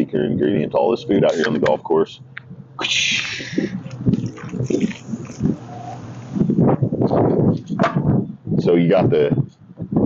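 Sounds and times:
man making wordless vocal sounds: 0.0 - 2.1.

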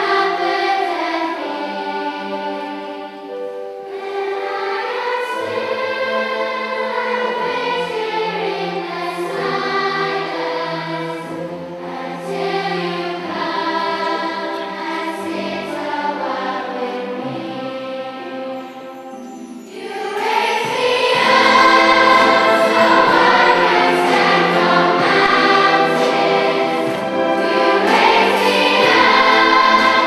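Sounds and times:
children's choir singing: 0.0 - 30.0
orchestra playing: 0.0 - 30.0.

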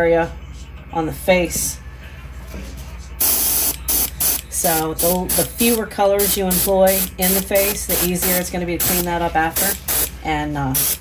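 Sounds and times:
airbrush spraying hiss: 3.2 - 10.1, 10.8 - 11.0.

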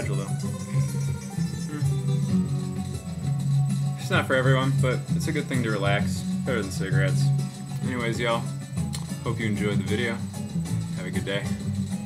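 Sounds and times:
plucked guitar music: 0.0 - 12.0.

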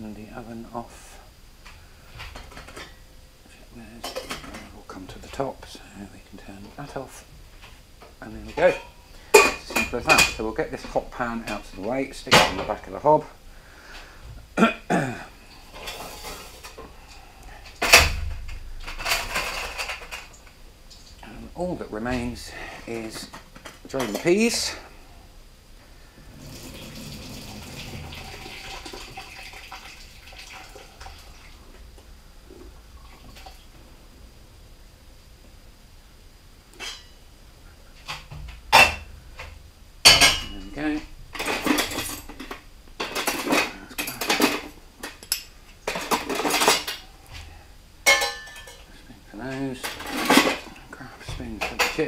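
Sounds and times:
soft steady noise: 0.0 - 52.0.

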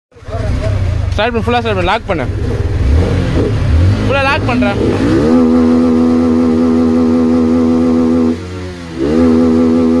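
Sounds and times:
motorcycle engine at high rpm: 0.1 - 10.0.

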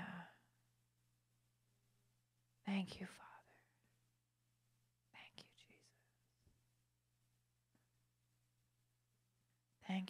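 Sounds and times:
person whispering into microphone: 2.7 - 3.6, 5.2 - 6.0.

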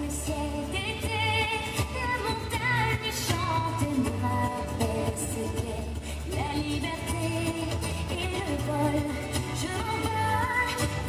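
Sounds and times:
high singing voice: 0.0 - 11.0
steady bass line: 0.0 - 11.0.

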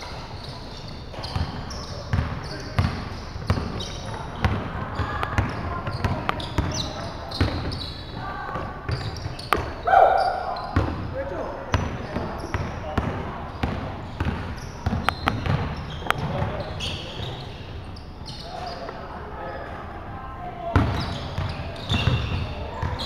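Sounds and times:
sneaker squeaks: 0.0 - 19.9, 20.7 - 23.0
players calling out: 3.5 - 14.3
loud shout: 9.8 - 10.7
basketball bouncing on hardwood: 11.7 - 16.5, 20.7 - 23.0.

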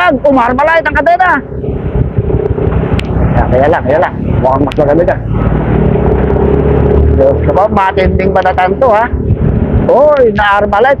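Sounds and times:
motorcycle engine running: 0.0 - 11.0
road and wind rush: 0.0 - 11.0.

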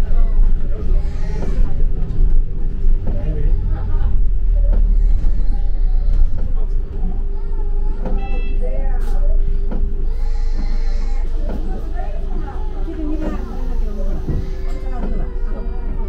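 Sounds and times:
bus engine and road rumble: 0.0 - 16.0.

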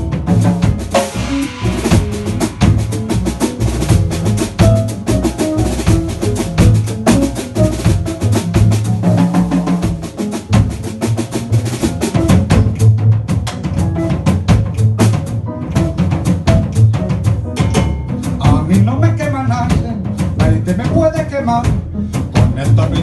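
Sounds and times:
driving percussion groove: 0.0 - 23.0
live jazz band playing: 0.0 - 23.0.

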